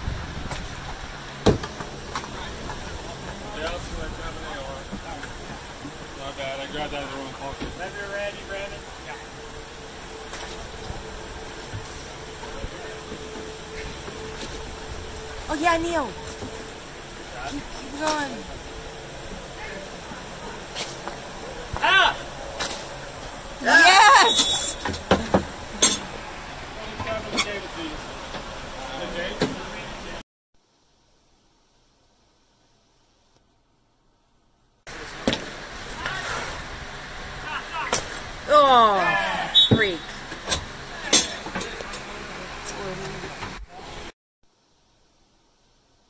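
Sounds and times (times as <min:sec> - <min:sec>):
open-air rink noise: 0:00.0 - 0:30.2, 0:34.9 - 0:44.1
outdoor background noise: 0:00.0 - 0:46.0
spectator shouting: 0:21.8 - 0:22.3, 0:23.6 - 0:24.8, 0:37.4 - 0:40.0.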